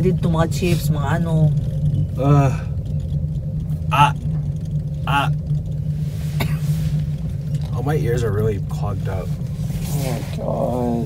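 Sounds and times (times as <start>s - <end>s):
low rumble inside gondola cabin: 0.0s - 11.0s.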